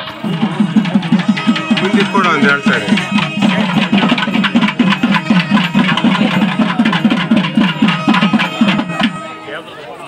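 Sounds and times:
music with fast drumbeat: 0.0 - 9.4.

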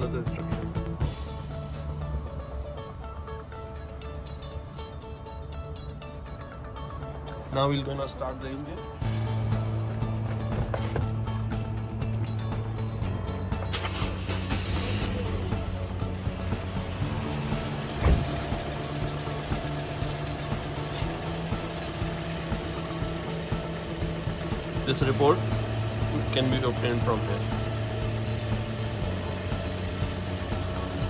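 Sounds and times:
car engine starting and idling: 8.8 - 31.0.

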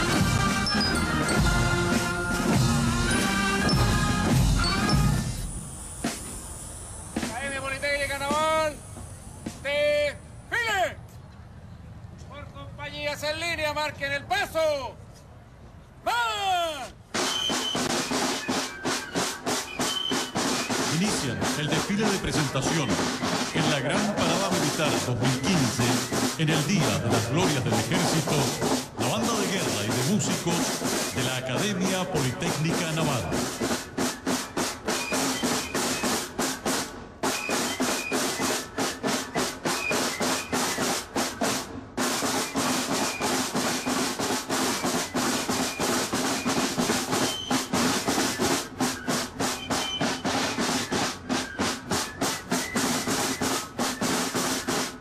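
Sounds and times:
snare drums beating a cadence: 0.0 - 10.0, 17.1 - 55.0.

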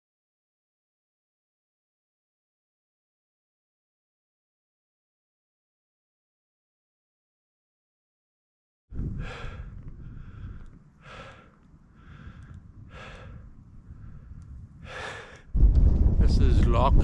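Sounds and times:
wind rumbling on microphone: 8.9 - 17.0
man breathing heavily: 9.0 - 15.6.

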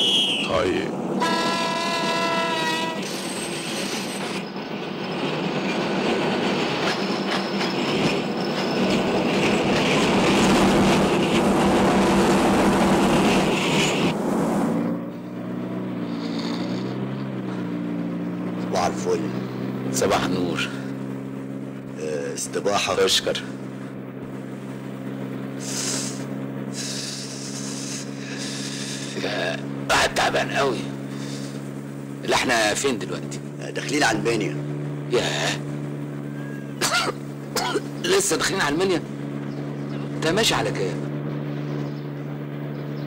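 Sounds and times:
vehicle engine running: 0.0 - 43.0
train rumbling and rattling: 0.6 - 14.9
train horn: 1.2 - 3.2.

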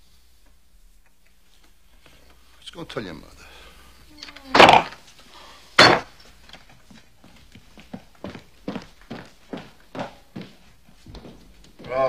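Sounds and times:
loud wooden thump: 5.8 - 6.1
footsteps on wooden floor: 5.8 - 12.0.

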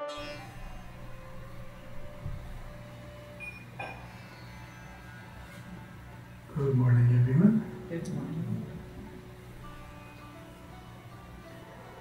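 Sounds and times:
plucked-string music: 0.0 - 12.0
steady low hum: 0.2 - 12.0.

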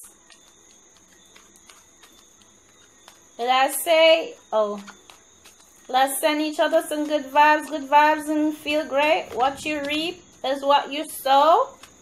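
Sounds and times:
playing cards being shuffled: 0.0 - 3.3.

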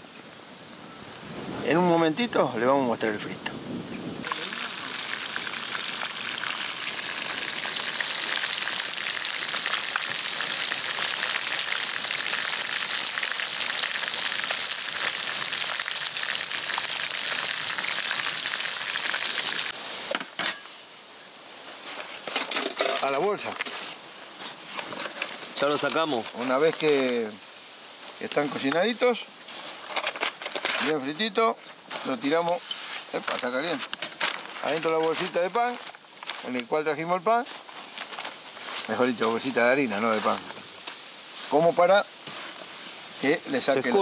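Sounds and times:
fish sizzling in hot oil: 4.2 - 20.6.

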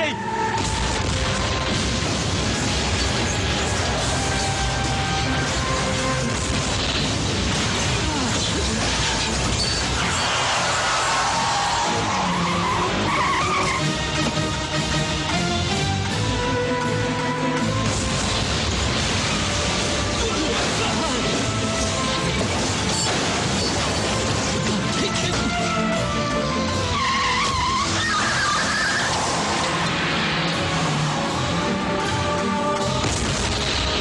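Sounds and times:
background music: 0.0 - 34.0
car tyres squealing: 8.9 - 14.6, 26.7 - 31.5
vehicle engine: 25.8 - 34.0.

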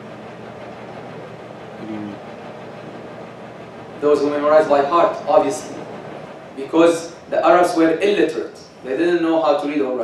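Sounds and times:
room noise hiss: 0.0 - 10.0
person humming mm: 1.8 - 2.2.

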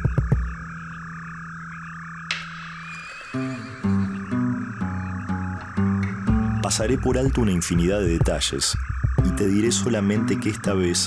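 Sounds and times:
frogs croaking: 0.0 - 11.0
soft background music: 0.0 - 11.0.

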